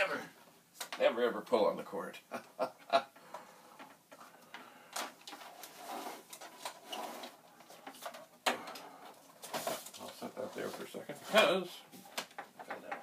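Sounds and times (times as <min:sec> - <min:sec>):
plastic equipment clicks and rustles: 0:03.8 - 0:10.2, 0:12.0 - 0:13.0.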